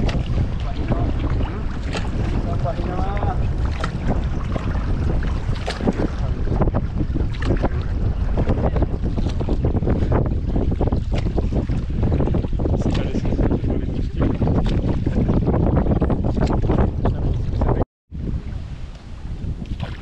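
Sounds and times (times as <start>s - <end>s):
water lapping against hull: 0.0s - 20.0s
wind buffeting microphone: 0.0s - 20.0s.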